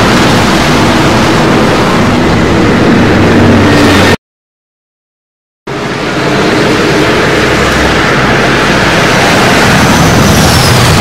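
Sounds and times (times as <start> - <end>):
spaceship engine rushing noise: 0.0 - 4.2, 5.7 - 11.0
low hum: 5.7 - 11.0.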